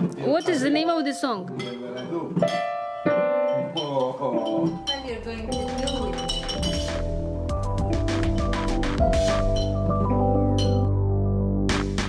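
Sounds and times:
digital piano notes: 0:00.0 - 0:12.0.

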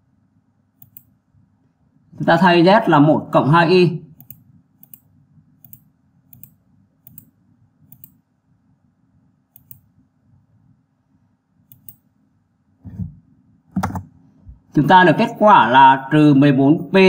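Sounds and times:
faint low hum: 0:00.0 - 0:17.0.

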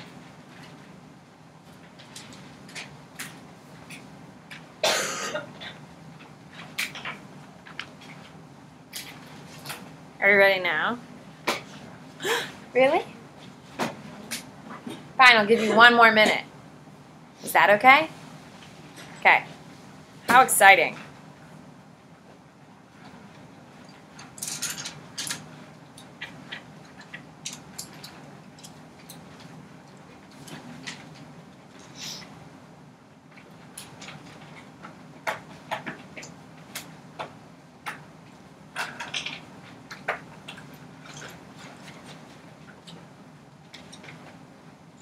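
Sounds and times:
low steady hum: 0:00.0 - 0:45.0.

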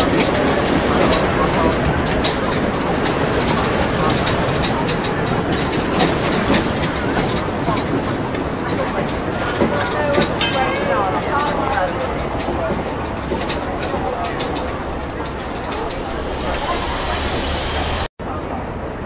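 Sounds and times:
train wheel clacks: 0:00.0 - 0:18.1
street crowd voices: 0:00.0 - 0:19.0
train rumbling on rails: 0:00.0 - 0:19.0.

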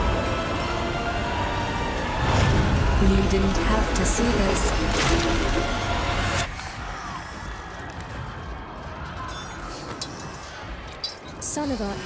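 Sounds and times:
dramatic music: 0:00.0 - 0:10.4.

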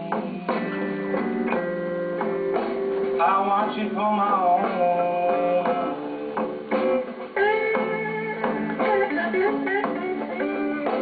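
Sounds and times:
blues band playing live: 0:00.0 - 0:11.0
picked guitar notes: 0:00.0 - 0:11.0.

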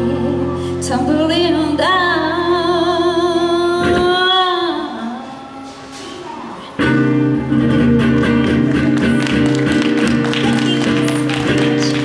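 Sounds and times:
guitar strumming chords: 0:06.8 - 0:12.0.

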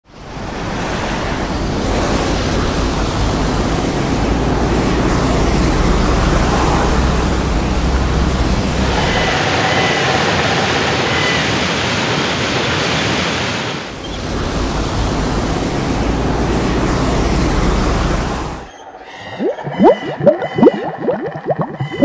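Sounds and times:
traffic rumble: 0:00.2 - 0:09.3, 0:13.9 - 0:18.7.

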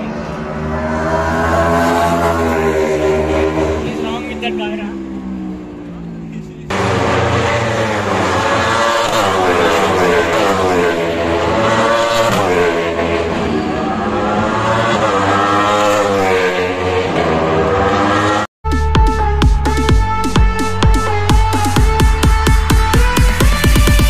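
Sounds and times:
electric race cars whining past: 0:00.0 - 0:18.5.

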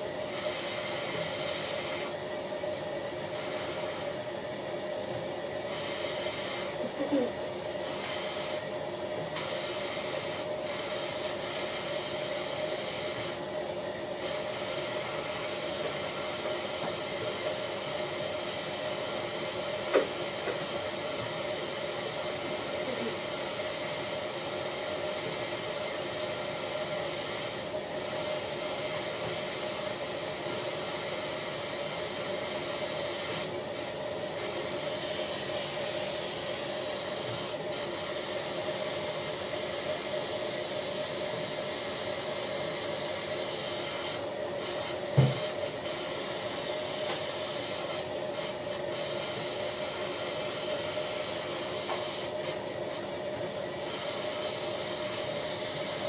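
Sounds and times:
dental suction hiss and hum: 0:07.8 - 0:13.4, 0:14.2 - 0:40.8, 0:41.4 - 0:53.0
short high beeps: 0:20.6 - 0:21.0, 0:22.6 - 0:24.0.

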